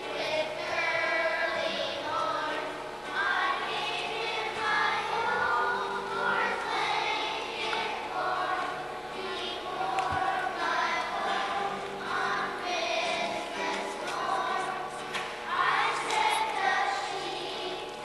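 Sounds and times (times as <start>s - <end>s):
children's choir singing: 0.0s - 18.0s.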